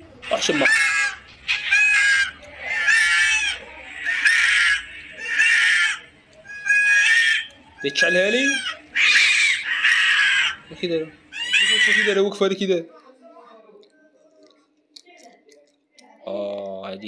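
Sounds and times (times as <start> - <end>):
cats yowling: 0.3 - 10.7, 11.3 - 12.4.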